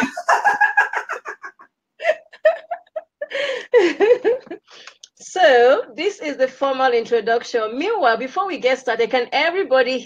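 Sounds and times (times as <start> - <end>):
woman laughing: 0.0 - 4.6.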